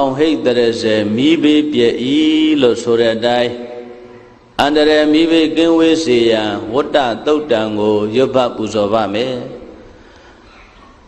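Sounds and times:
man chanting: 0:00.0 - 0:09.8.

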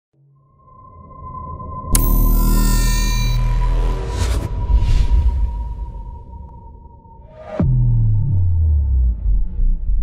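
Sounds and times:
music: 0:00.2 - 0:10.0
steady high tone: 0:00.4 - 0:07.3
low rumble: 0:01.9 - 0:10.0.

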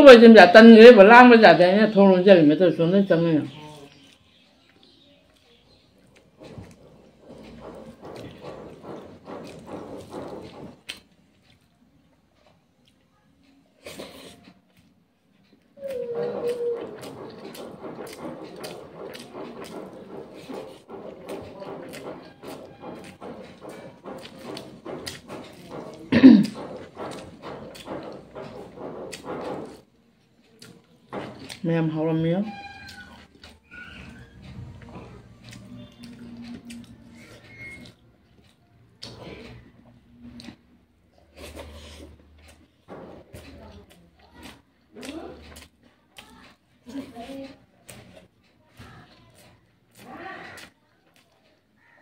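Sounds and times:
chewing and mouth clicks: 0:03.5 - 0:11.8, 0:12.4 - 0:31.6, 0:32.7 - 0:40.6, 0:41.2 - 0:52.0
fingers working food on plate: 0:05.4 - 0:11.7, 0:15.5 - 0:51.8.

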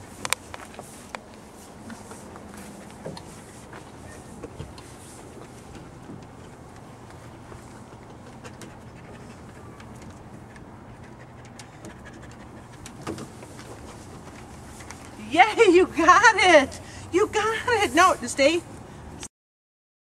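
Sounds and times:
dog panting: 0:06.4 - 0:15.1.

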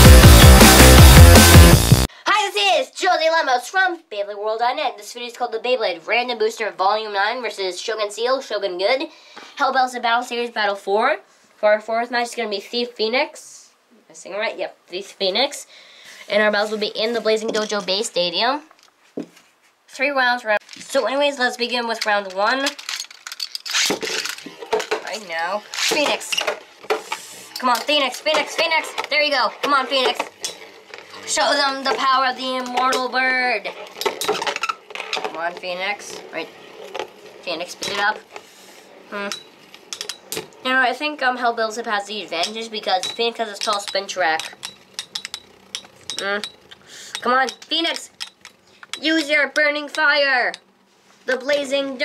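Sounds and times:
spinning tops clashing metallically: 0:21.9 - 0:38.4, 0:39.1 - 0:40.9, 0:42.1 - 0:50.6.

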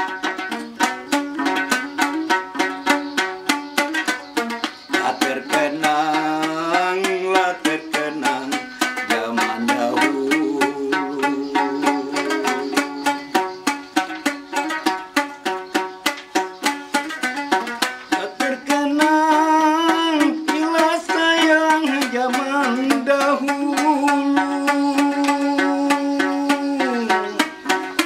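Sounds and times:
wooden lute strumming: 0:00.0 - 0:28.0
man singing: 0:04.9 - 0:13.2, 0:18.1 - 0:27.8.

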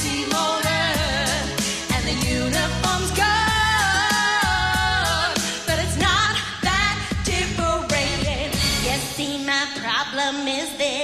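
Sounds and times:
pop song with vocals: 0:00.0 - 0:11.0.

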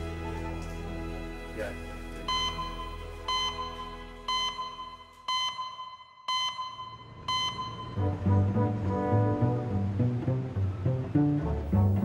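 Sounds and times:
soft music: 0:00.0 - 0:05.5, 0:07.1 - 0:12.0
electronic beeps: 0:02.3 - 0:08.1.

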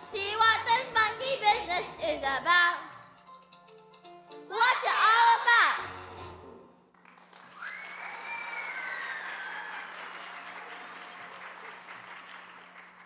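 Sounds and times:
audience applauding: 0:06.9 - 0:13.0
high-pitched whoop: 0:07.5 - 0:10.0.

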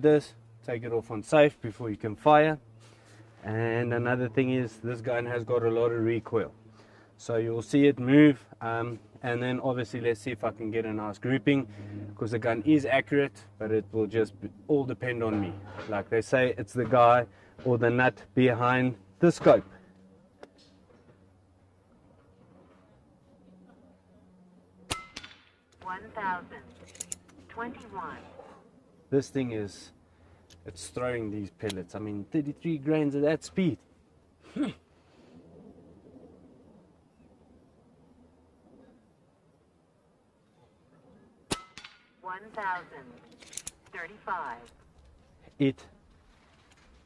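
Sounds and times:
low steady hum: 0:00.0 - 0:47.0
silenced air rifle shot: 0:24.9 - 0:25.6, 0:41.5 - 0:42.2.

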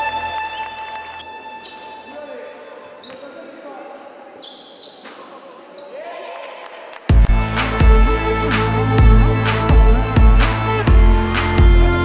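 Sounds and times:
sneakers squeaking on hardwood: 0:01.2 - 0:06.0.

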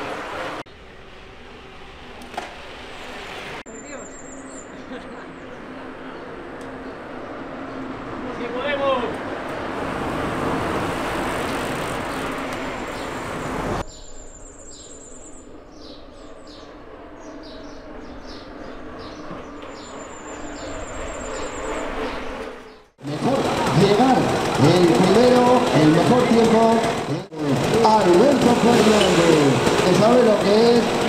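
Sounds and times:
small birds chirping and trilling: 0:03.7 - 0:07.1, 0:12.9 - 0:22.9
outdoor rushing noise: 0:05.6 - 0:31.0.

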